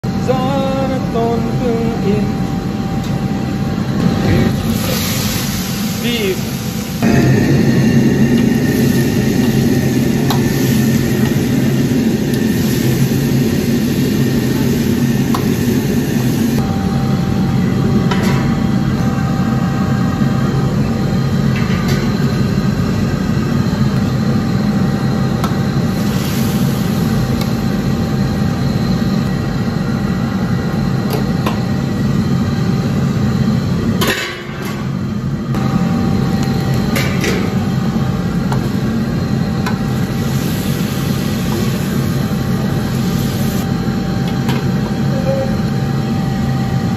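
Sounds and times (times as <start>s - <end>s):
gas burner roaring: 0.0s - 46.9s.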